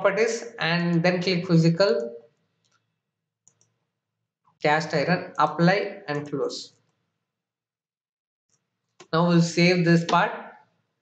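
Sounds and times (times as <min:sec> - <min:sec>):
computer mouse clicks: 0:02.0 - 0:03.8, 0:06.1 - 0:07.0.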